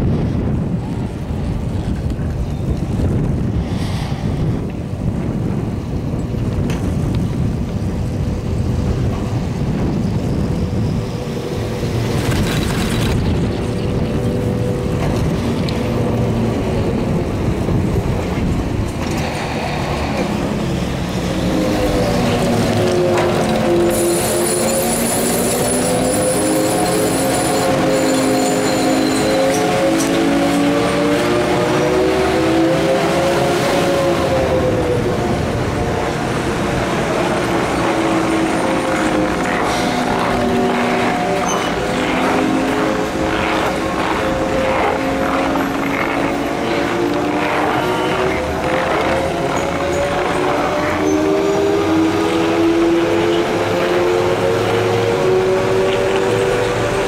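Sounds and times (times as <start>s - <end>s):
chairlift rumble: 0.0s - 57.0s
wind noise: 0.0s - 57.0s
machinery whine wavering in pitch: 20.0s - 57.0s.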